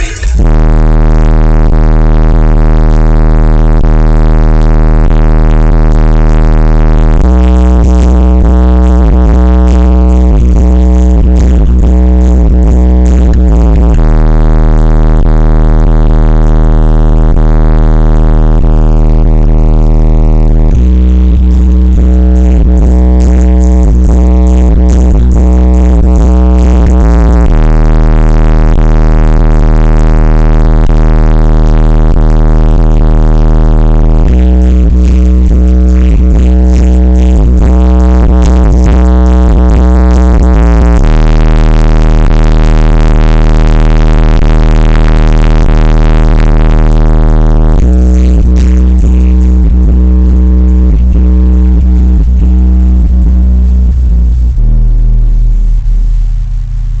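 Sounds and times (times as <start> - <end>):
bass-heavy electronic music: 0.0 - 57.0.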